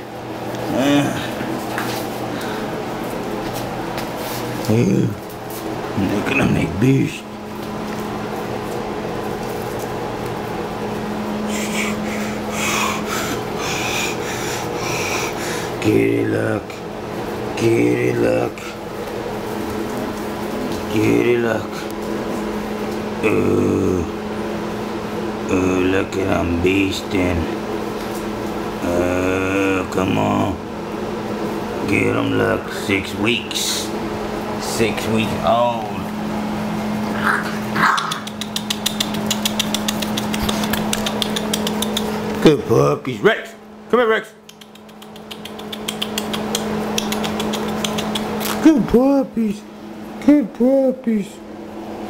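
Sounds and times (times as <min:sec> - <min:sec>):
steady low hum: 0:00.0 - 0:52.0
puppies scuffling and rasping: 0:01.2 - 0:06.6, 0:07.2 - 0:11.4, 0:18.7 - 0:21.0, 0:36.0 - 0:42.7, 0:44.6 - 0:48.6
fast sharp clicks: 0:37.9 - 0:42.2, 0:44.4 - 0:48.6.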